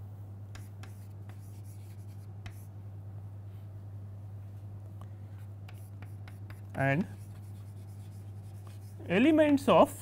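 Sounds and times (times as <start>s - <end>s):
chalk tapping on blackboard: 0.5s - 2.7s, 5.6s - 9.1s.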